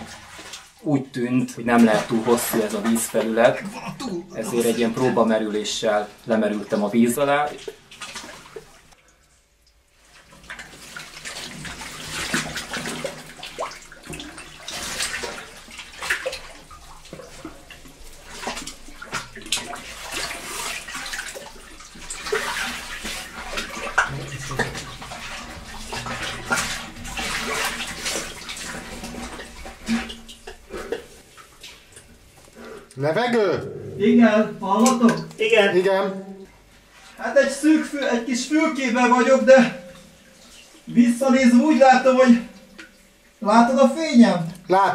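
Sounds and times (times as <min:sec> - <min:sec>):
muddy water sloshing and splashing: 0:00.0 - 0:09.2, 0:09.9 - 0:32.9, 0:36.6 - 0:43.4.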